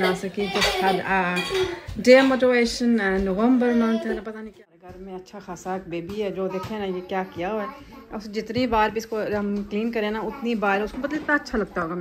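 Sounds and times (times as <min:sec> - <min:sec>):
woman talking: 0:00.0 - 0:12.0.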